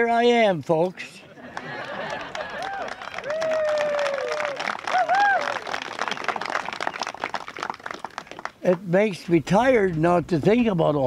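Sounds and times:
audience clapping: 0:01.4 - 0:08.8.

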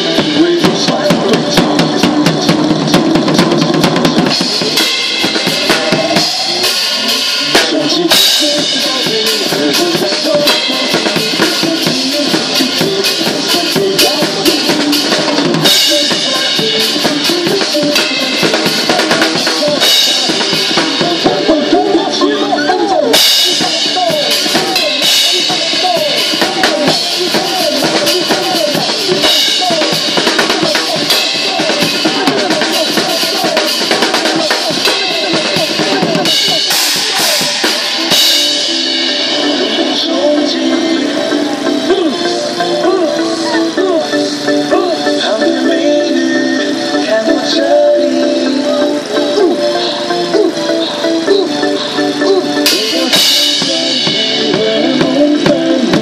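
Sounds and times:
acoustic drum kit groove: 0:00.0 - 0:56.0
backing music: 0:00.0 - 0:56.0.

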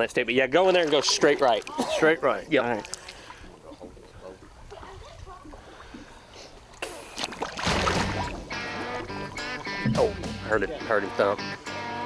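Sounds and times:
water splashing and sloshing: 0:00.0 - 0:11.3
guitar music: 0:07.8 - 0:12.0.

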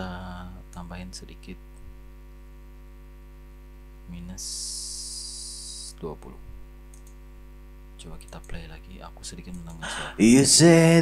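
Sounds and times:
electrical mains hum: 0:00.0 - 0:11.0
high hiss: 0:04.4 - 0:05.9
person speaking: 0:08.0 - 0:11.0.

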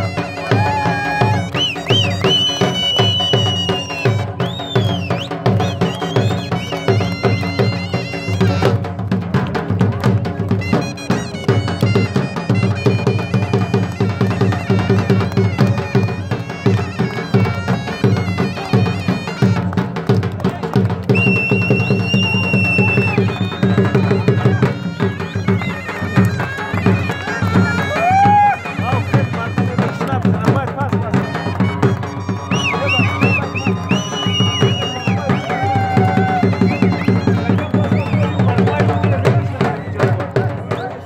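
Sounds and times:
wind instrument melody over drone: 0:00.0 - 0:08.9, 0:10.5 - 0:19.8, 0:21.2 - 0:38.9
barrel drum beating: 0:00.0 - 0:40.8.

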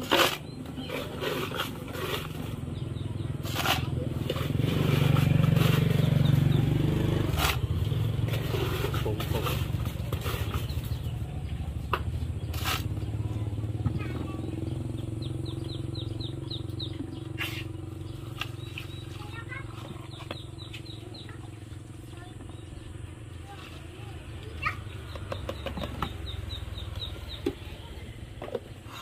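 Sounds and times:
bird chirping: 0:00.2 - 0:04.1, 0:04.7 - 0:23.6, 0:24.3 - 0:28.1
low motor hum: 0:00.4 - 0:28.9.

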